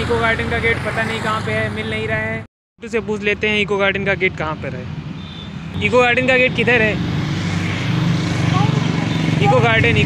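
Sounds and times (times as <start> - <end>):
motorcycle engines passing: 0.0 - 2.4, 3.3 - 10.0.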